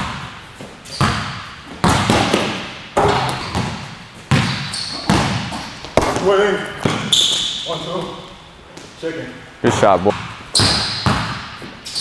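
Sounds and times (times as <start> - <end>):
basketball bouncing on hardwood: 1.0 - 7.1, 10.2 - 11.7.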